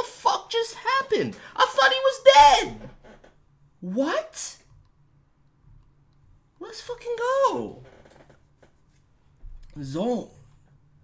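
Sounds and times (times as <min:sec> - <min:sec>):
man talking: 0:09.6 - 0:10.5.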